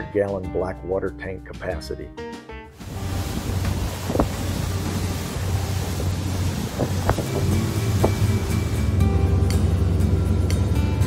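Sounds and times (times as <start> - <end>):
wind buffeting microphone: 2.8 - 9.0
diesel engines droning: 3.6 - 11.0.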